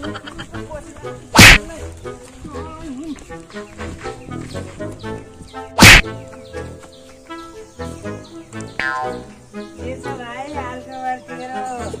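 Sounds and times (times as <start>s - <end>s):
background music: 0.0s - 12.0s
loud whack hit effect: 1.4s - 1.6s, 5.8s - 6.1s.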